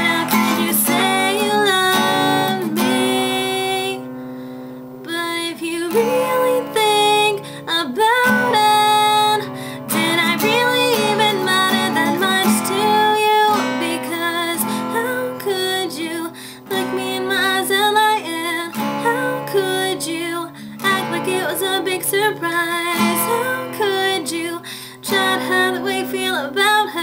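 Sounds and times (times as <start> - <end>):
woman singing: 0.0 - 4.1, 5.0 - 27.0
acoustic guitar: 0.0 - 27.0.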